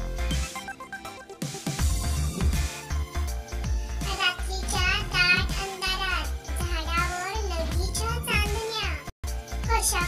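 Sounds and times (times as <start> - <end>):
background music with bass line: 0.0 - 10.0
child-like voice singing: 4.0 - 9.0.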